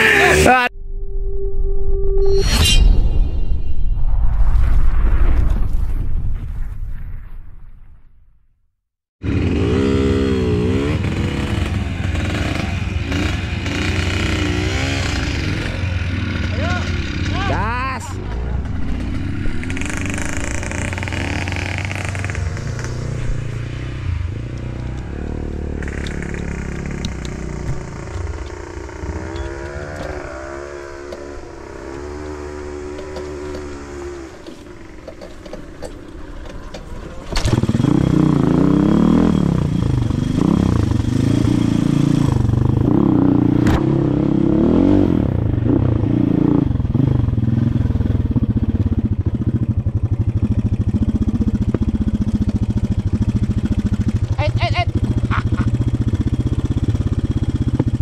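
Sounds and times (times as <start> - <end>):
dirt bike engine revving: 9.2 - 35.1, 37.4 - 58.0.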